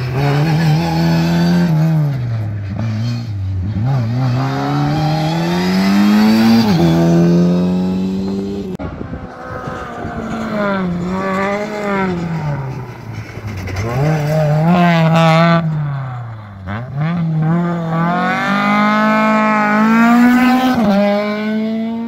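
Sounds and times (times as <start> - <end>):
rally car engine revving: 0.0 - 22.0.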